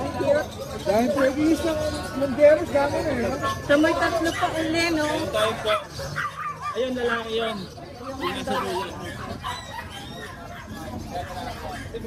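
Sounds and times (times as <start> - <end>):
low background talk: 0.0 - 12.0.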